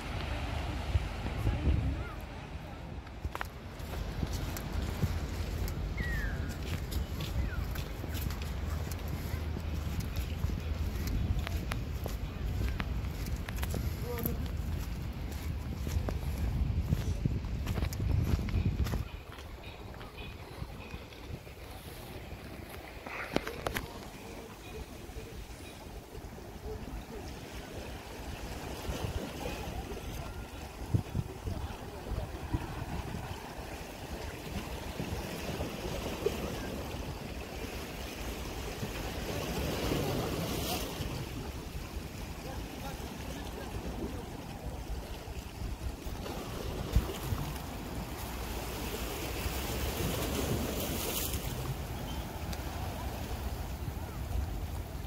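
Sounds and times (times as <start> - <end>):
wind on microphone: 0.0 - 55.0
small waves on rocks: 18.9 - 55.0.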